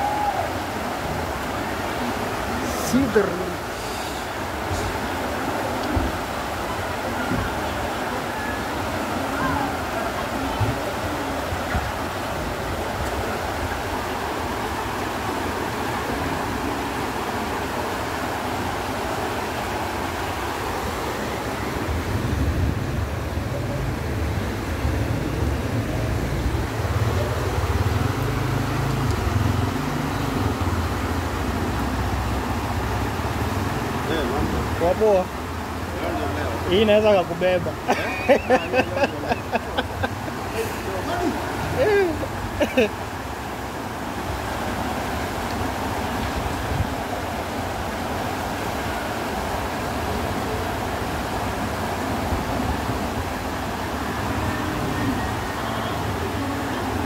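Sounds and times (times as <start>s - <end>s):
floodwater rushing: 0.0s - 57.0s.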